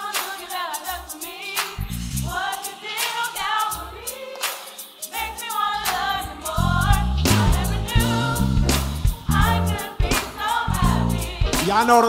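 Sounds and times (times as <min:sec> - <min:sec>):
gospel choir singing: 0:00.0 - 0:12.0
instrumental backing: 0:04.8 - 0:12.0.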